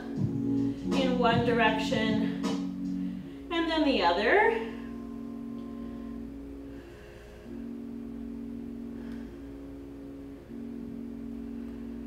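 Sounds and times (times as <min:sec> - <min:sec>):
soft background music chords: 0:00.0 - 0:12.0.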